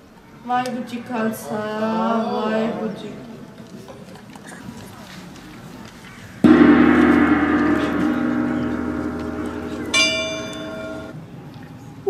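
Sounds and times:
gong ringing: 6.5s - 11.2s.

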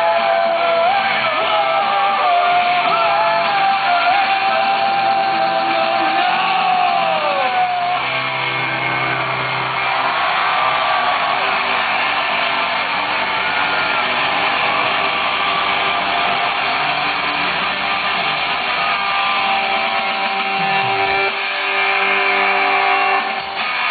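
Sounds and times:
audience cheering and clapping: 0.0s - 23.9s
punk rock band playing: 0.0s - 23.9s.

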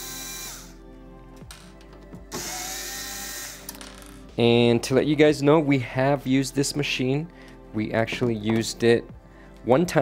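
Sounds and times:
cordless drill whirring: 0.0s - 0.8s, 2.3s - 3.7s.

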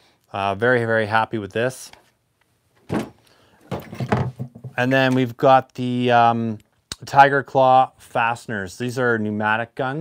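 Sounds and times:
tool box dull clunk: 2.8s - 4.8s
tools clattering in plastic box: 3.6s - 4.8s.

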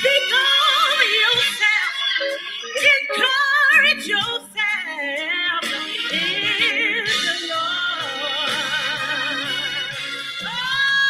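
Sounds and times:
instrumental accompaniment: 0.0s - 11.0s
woman singing with vibrato: 0.0s - 11.0s.

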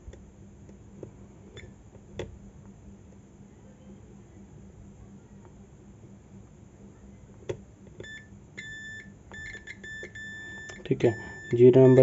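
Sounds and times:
multimeter continuity beeps: 8.0s - 12.0s.

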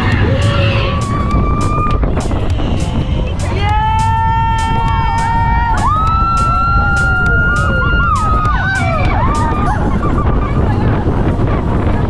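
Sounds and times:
music: 0.0s - 12.0s
roller coaster rumbling on track: 0.0s - 12.0s
wind on microphone: 0.0s - 12.0s.

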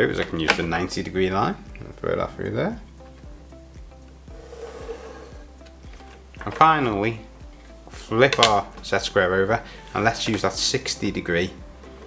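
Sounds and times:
quiet background music: 0.0s - 12.0s
pencil scratching on paper: 4.4s - 5.4s.

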